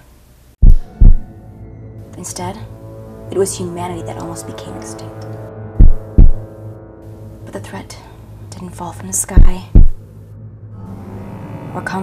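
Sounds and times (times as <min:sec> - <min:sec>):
deep bass thumps: 0:00.6 - 0:01.3, 0:05.8 - 0:06.5, 0:09.3 - 0:10.1
low music drone: 0:00.7 - 0:12.0.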